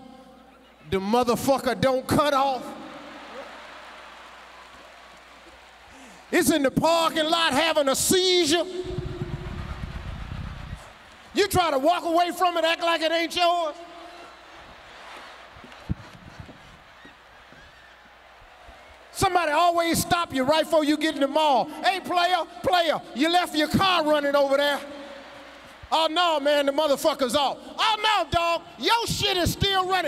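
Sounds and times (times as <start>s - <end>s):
audience clapping: 2.7s - 6.4s, 8.9s - 13.0s, 14.0s - 19.1s, 23.9s - 26.4s.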